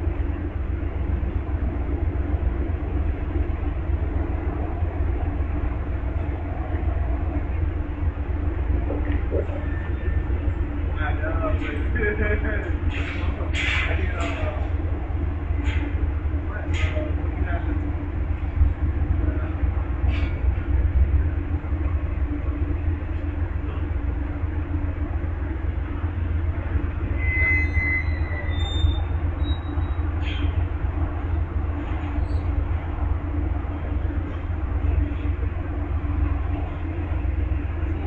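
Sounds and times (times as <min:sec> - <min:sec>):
train locomotives idling: 0:00.0 - 0:38.0.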